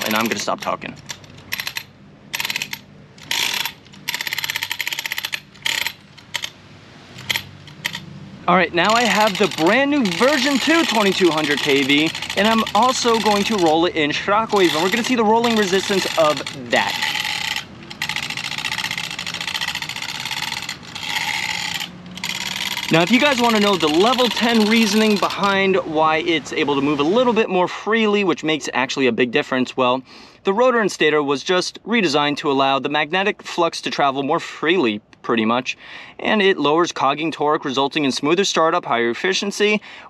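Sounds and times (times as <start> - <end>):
motor rattling rapidly: 0.0 - 8.1, 8.7 - 25.8
rapid ticking of drivetrain: 8.8 - 25.7
rc car rolling over brick pavers: 8.8 - 25.8.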